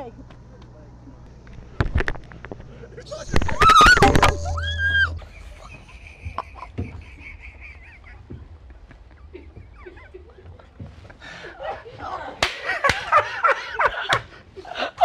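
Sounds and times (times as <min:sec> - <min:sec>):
woman crying out and laughing: 0:03.1 - 0:08.6.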